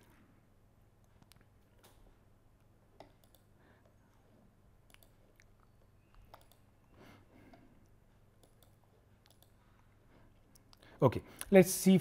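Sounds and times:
faint clicks: 0:04.9 - 0:06.7.

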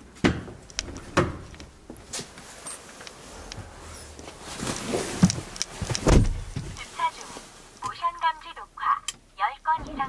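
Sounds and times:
clicks and handling sounds: 0:00.6 - 0:08.4
heavy low thud: 0:06.0 - 0:06.8.

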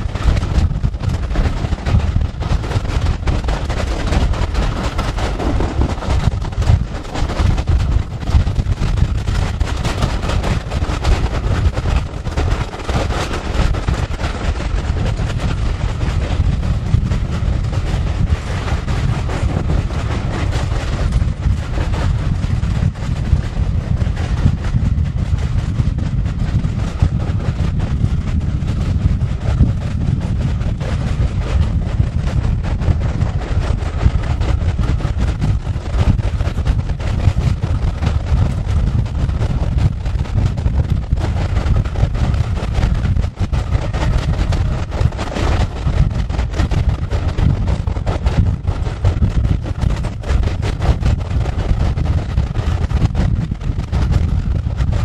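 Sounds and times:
moving train rumble: 0:00.0 - 0:55.0
wind buffeting microphone: 0:00.0 - 0:55.0.

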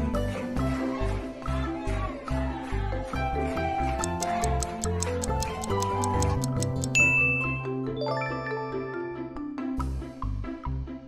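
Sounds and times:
light background music: 0:00.0 - 0:11.0
fast ticking clock: 0:04.0 - 0:07.0.

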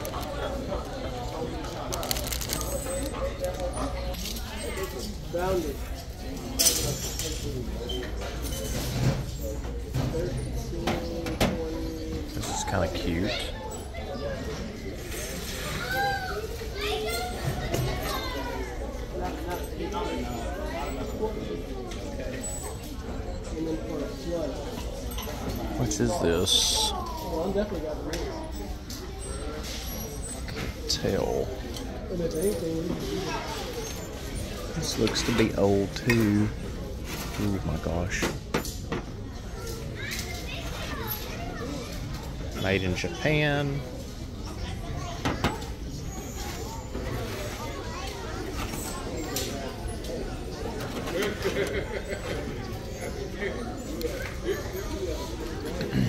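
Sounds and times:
children calling and talking: 0:00.0 - 0:56.0
children's voices: 0:15.6 - 0:19.0.

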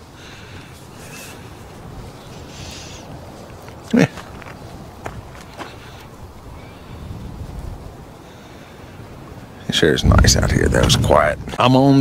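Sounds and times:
soft footsteps on dirt: 0:00.0 - 0:08.2
low steady background noise: 0:00.0 - 0:12.0.

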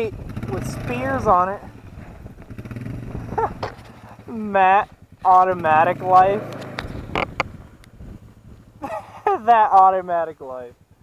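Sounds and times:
quad engine idling: 0:00.0 - 0:11.0.

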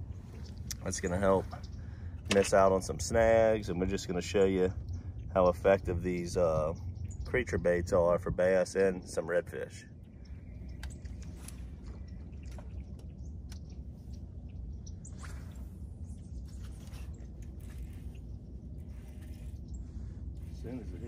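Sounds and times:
steady low rumble: 0:00.0 - 0:21.0.

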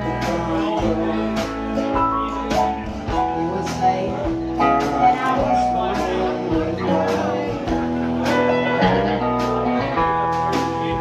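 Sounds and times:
live country band playing: 0:00.0 - 0:11.0
electric guitar notes: 0:04.6 - 0:11.0.

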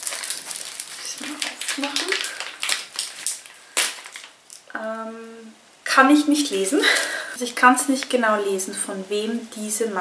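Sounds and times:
packaging crinkling: 0:00.0 - 0:04.7.

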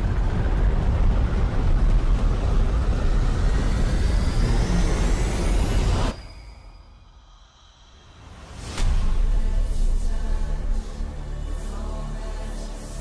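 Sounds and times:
loud deep rumble: 0:00.0 - 0:06.2.

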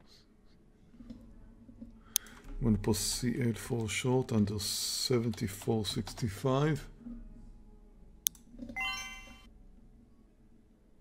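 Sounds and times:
computer notification chime: 0:08.8 - 0:09.5.

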